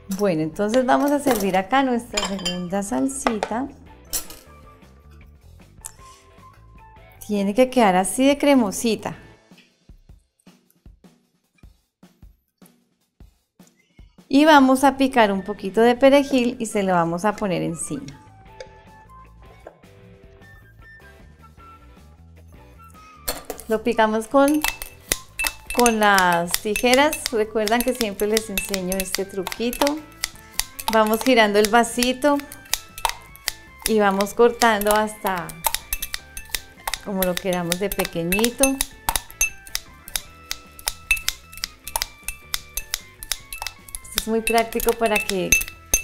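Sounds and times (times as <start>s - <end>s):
quiet melodic background music: 0.0s - 9.6s, 14.3s - 46.0s
scissors snipping in a glass: 2.2s - 2.7s, 24.3s - 46.0s.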